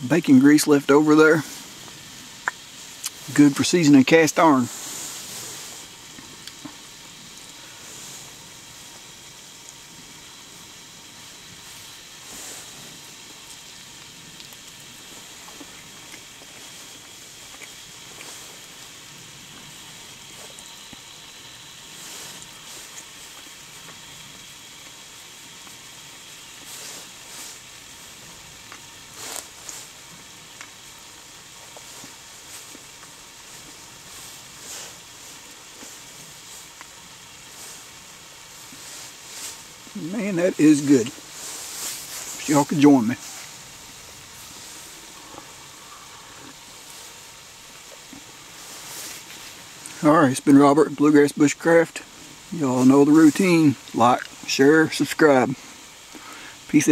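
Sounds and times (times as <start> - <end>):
fuel tablet burning hiss: 0.0 - 56.9.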